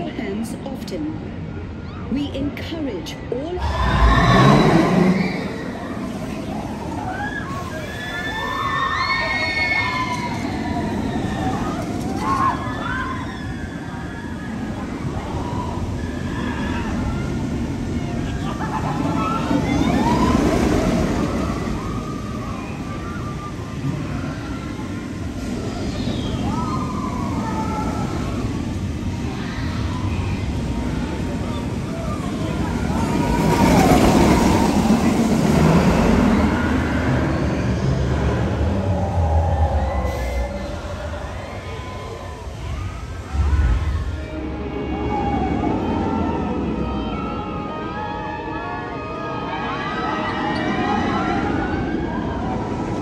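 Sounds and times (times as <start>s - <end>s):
roller coaster rumbling on track: 0.0s - 53.0s.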